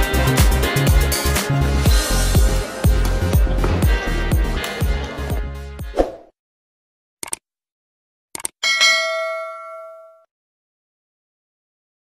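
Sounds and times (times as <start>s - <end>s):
bright bell ding: 8.6s - 10.3s.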